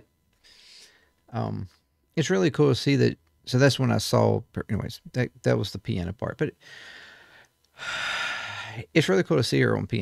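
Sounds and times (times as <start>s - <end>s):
man breathing: 0.4s - 1.2s, 6.6s - 8.8s.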